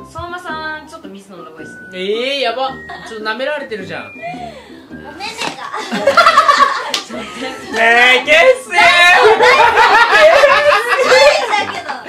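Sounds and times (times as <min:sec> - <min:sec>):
loud hearty laughter: 0:05.8 - 0:07.8, 0:09.0 - 0:12.0.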